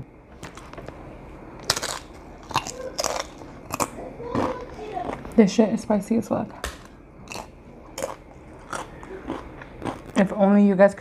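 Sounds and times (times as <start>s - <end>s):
crunchy food being chewed: 0.4s - 1.0s, 1.6s - 5.4s, 6.6s - 10.4s.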